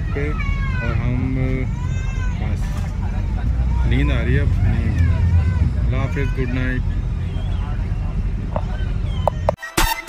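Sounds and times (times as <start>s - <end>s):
faint voices: 0.0s - 9.6s
low rumble of coach engine: 0.0s - 9.6s.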